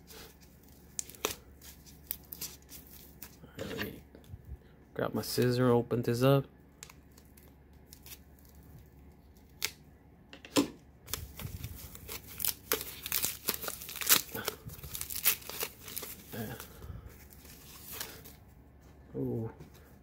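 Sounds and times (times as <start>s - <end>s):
plastic wrap crinkling and tearing: 0.1s - 3.4s, 6.8s - 9.8s, 11.1s - 18.4s.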